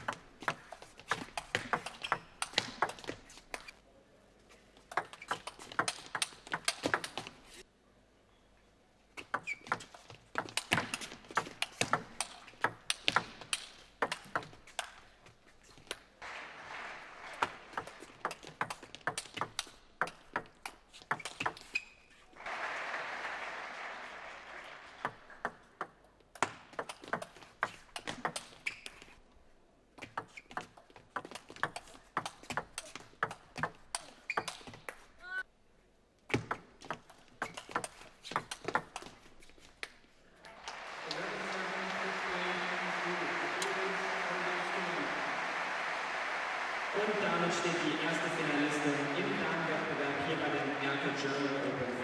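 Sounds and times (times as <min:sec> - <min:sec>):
audience applause: 0:16.2 - 0:18.3, 0:22.4 - 0:25.6, 0:40.4 - 0:52.0.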